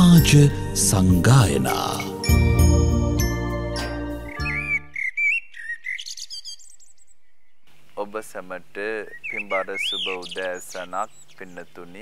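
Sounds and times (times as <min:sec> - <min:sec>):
theme music with chimes: 0:00.0 - 0:05.0
birds chirping: 0:04.1 - 0:12.0.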